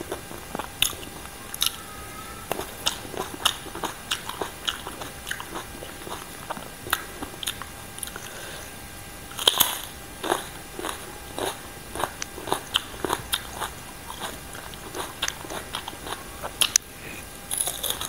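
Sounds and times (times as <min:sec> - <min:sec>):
chewing with wet crunches: 0:00.0 - 0:01.8, 0:02.4 - 0:08.4, 0:09.3 - 0:18.0
crunchy bite into chili: 0:02.5 - 0:08.3, 0:09.3 - 0:18.0.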